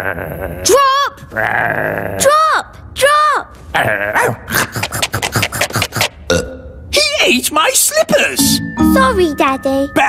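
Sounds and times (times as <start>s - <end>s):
cartoon rapid chomping bites: 4.5s - 6.5s.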